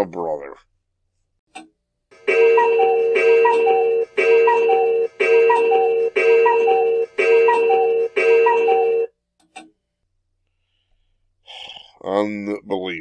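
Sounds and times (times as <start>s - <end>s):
cuckoo clock calling: 2.2s - 9.1s.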